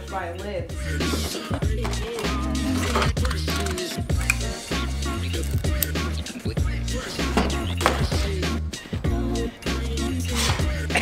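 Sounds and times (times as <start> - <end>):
background music with steady beat: 0.0 - 11.0
deep held bass line: 0.6 - 11.0.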